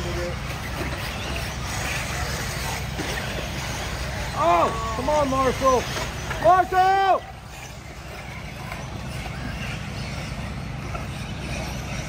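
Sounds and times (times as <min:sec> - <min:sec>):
rc buggies running on dirt: 0:00.0 - 0:12.0.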